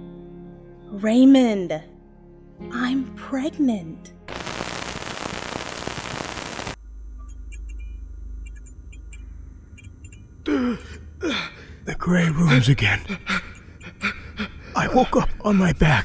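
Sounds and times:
loud burst of hiss: 4.3 - 6.8
faint high ticks: 7.2 - 10.3
man gasping: 10.4 - 11.8, 13.0 - 14.8.

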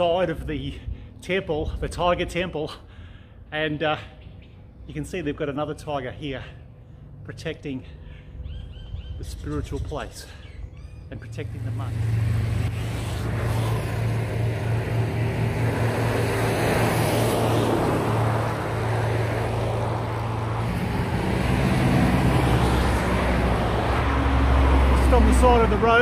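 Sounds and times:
road noise: 0.0 - 26.0
motorcycle engine cruising: 10.8 - 25.4.

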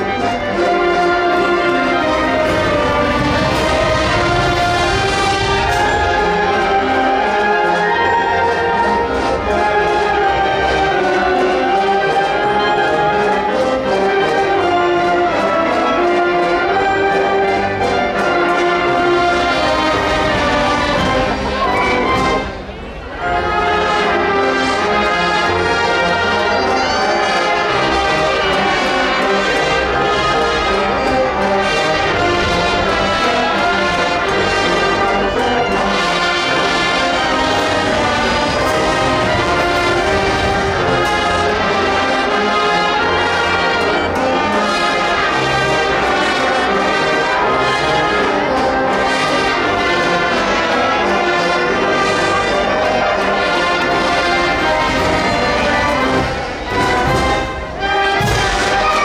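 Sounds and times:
wind band playing: 0.0 - 59.0.

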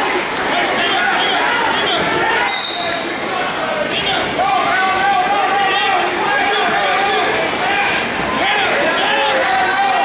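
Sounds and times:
people shouting: 0.5 - 10.0
referee whistle blast: 1.2 - 3.1.

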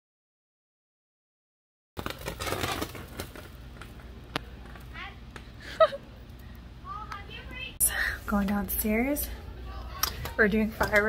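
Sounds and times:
voices of children and adults: 6.8 - 11.0.

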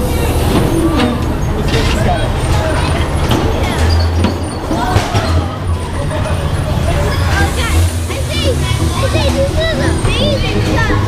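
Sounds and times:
bumper car rumbling: 0.0 - 11.0.

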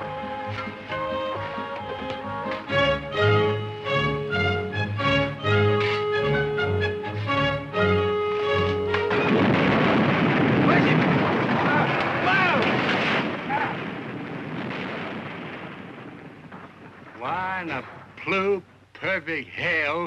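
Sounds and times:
orchestral film music: 0.0 - 9.6
dirt bank caving in rumble: 9.2 - 19.7.

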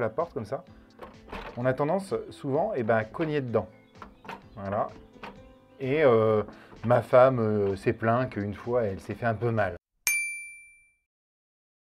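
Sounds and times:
bright bell ding: 10.1 - 11.0.

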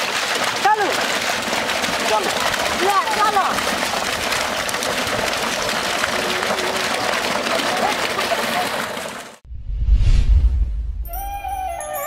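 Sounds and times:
water pouring into a ditch: 0.0 - 9.4
deep low boom: 9.5 - 11.2.

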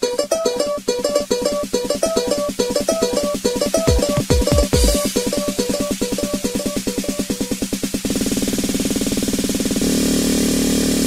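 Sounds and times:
pitched stab drum roll: 1.0 - 9.1
tribal house dance music: 2.5 - 7.9.

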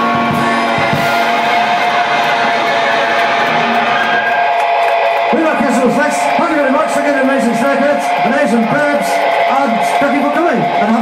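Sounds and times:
electric guitar ringing chord: 0.0 - 11.0.

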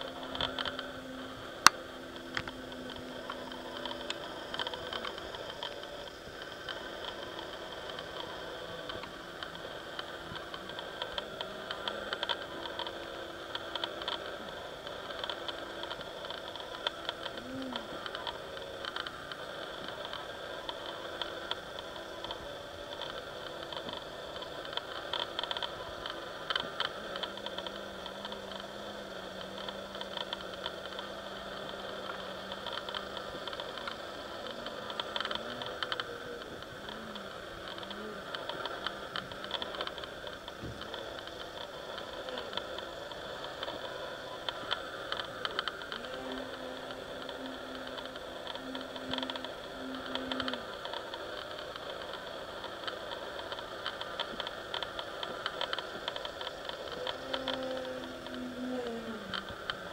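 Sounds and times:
model plane motor buzzing: 0.0 - 59.9
scattered crackles: 0.0 - 59.9.

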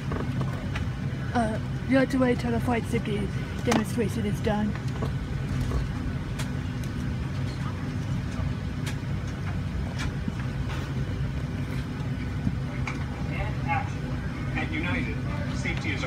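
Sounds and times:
airliner cabin drone: 0.0 - 16.0.

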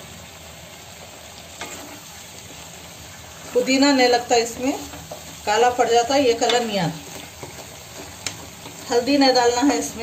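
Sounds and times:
meat sizzling in oil: 0.0 - 10.0
wooden spatula scraping pan: 1.6 - 2.1, 3.4 - 10.0.

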